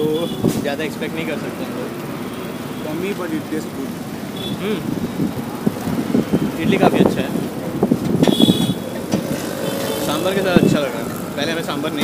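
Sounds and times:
people talking: 0.0s - 1.9s, 4.6s - 4.8s, 6.6s - 7.4s, 10.0s - 12.0s
road traffic: 0.0s - 12.0s.

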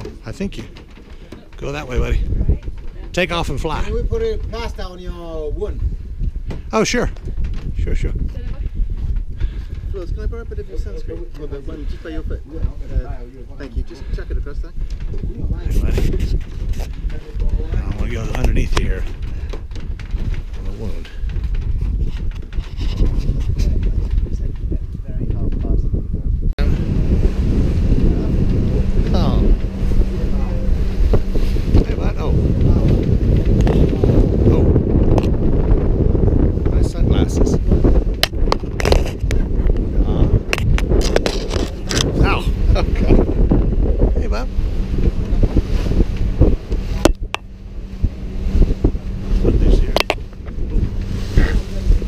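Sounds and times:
boat engine hum: 0.0s - 52.0s
wind buffeting microphone: 0.0s - 52.0s.

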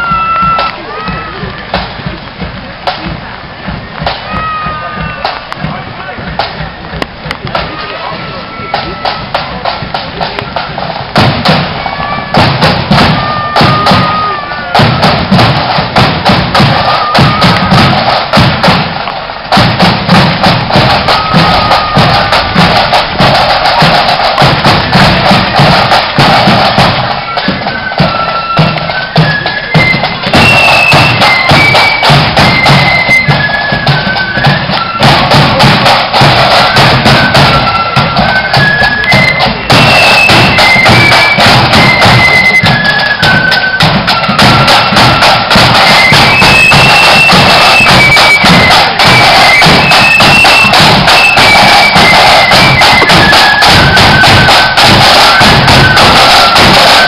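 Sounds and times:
drum beats: 0.0s - 57.0s
flute melody: 0.0s - 57.0s.

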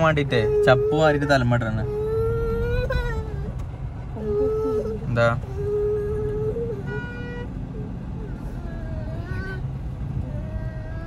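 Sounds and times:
vehicle road and engine noise: 0.0s - 11.0s.

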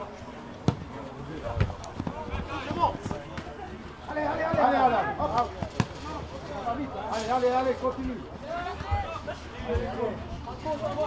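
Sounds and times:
football kicks: 0.6s - 3.6s.

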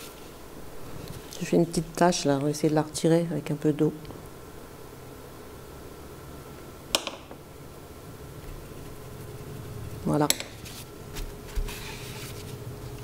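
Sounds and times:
paper tissue rustling: 0.0s - 0.4s, 10.6s - 13.0s.

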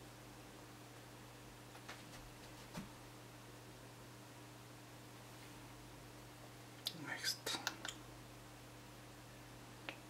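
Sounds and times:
steady low hum: 0.0s - 10.0s
soft whisper: 6.9s - 8.0s.

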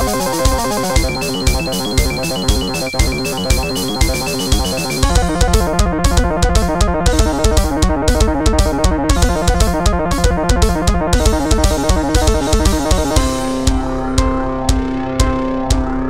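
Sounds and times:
synth music with drum kit: 0.0s - 16.0s.

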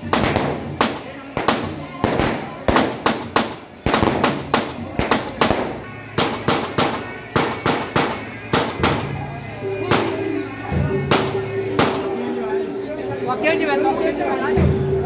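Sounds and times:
firecrackers banging: 0.0s - 12.4s.

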